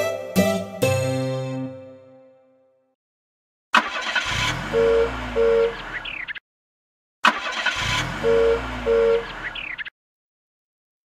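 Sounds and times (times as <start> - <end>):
car horn beeps: 8.2 - 9.3.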